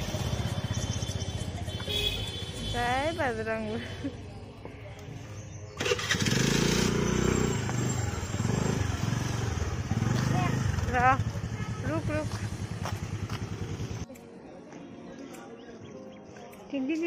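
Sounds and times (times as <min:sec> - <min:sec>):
motor scooter engine: 0:05.8 - 0:14.0.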